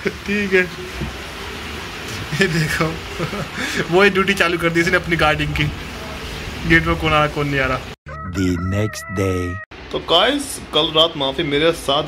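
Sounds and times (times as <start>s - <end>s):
rooster crow sound effect: 8.1s - 9.6s.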